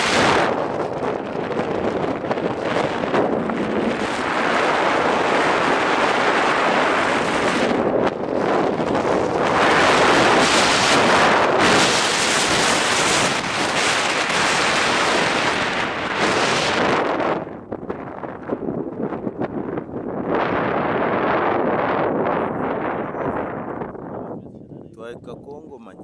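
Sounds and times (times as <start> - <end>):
wind rushing on microphone: 0.0 - 26.0.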